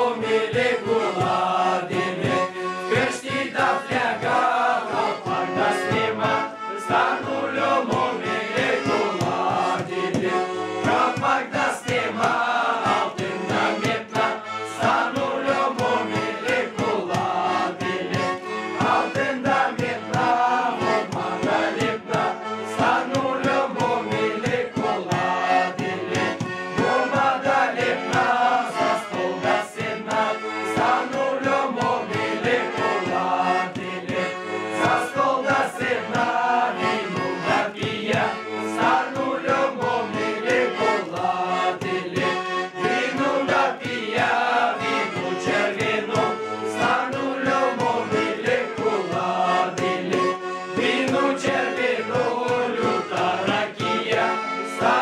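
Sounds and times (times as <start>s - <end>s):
button accordion: 0.0s - 55.0s
men singing a carol: 0.0s - 55.0s.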